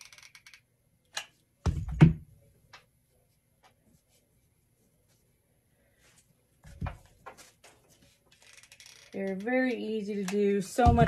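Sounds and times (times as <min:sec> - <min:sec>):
hands handling craft materials: 0:06.0 - 0:08.4.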